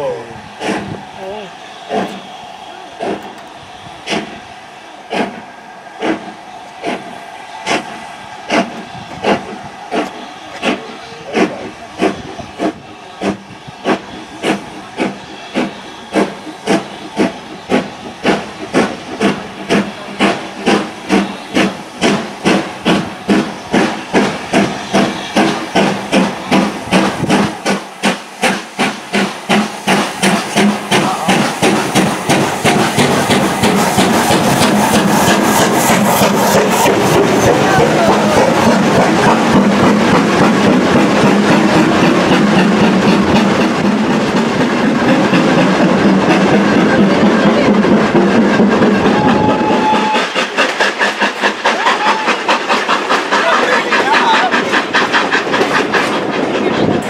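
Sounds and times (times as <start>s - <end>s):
steam hiss: 0.0s - 57.0s
steam locomotive exhaust beats: 0.0s - 57.0s.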